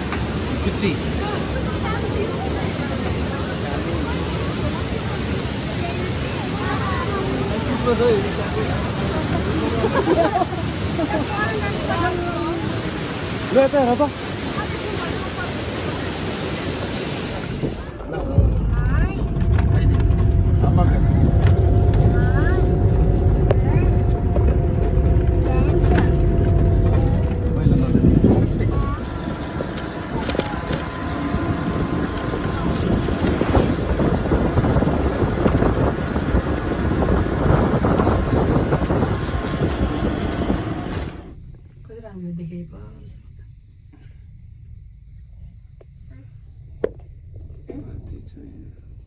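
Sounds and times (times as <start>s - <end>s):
vehicle road and engine noise: 0.0s - 16.4s, 17.4s - 43.0s
waterfall rushing: 0.0s - 18.1s
wind rumble on microphone: 14.4s - 42.1s.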